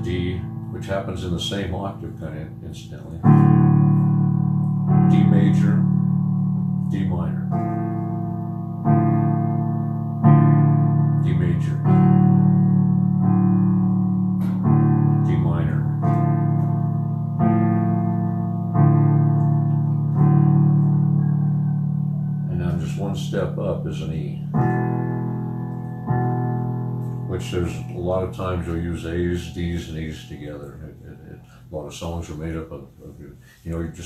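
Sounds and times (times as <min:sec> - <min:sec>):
piano chords on electronic keyboard: 0:00.0 - 0:34.0.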